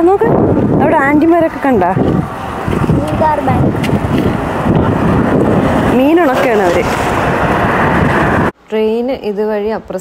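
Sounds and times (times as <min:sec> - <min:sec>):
wind rumbling on microphone: 0:00.0 - 0:08.6
road traffic: 0:00.0 - 0:08.7.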